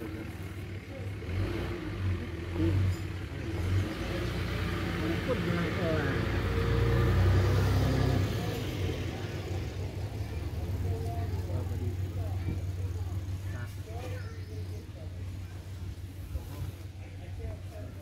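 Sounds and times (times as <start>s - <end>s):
truck engine rumble passing: 0.0s - 18.0s.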